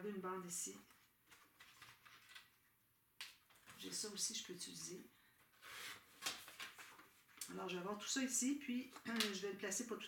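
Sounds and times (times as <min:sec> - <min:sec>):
paper rustling and tapping: 0:00.9 - 0:02.5, 0:05.4 - 0:07.5, 0:08.9 - 0:09.4.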